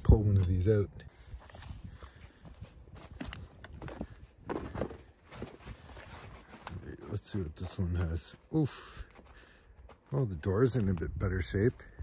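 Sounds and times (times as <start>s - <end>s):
footsteps on dry grass and dirt: 0.0s - 12.0s.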